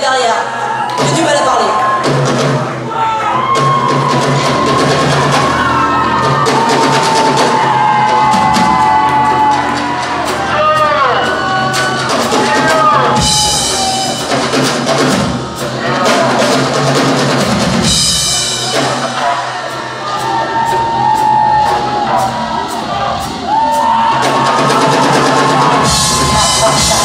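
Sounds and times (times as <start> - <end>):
drum kit rolls and fills: 0.0 - 27.0.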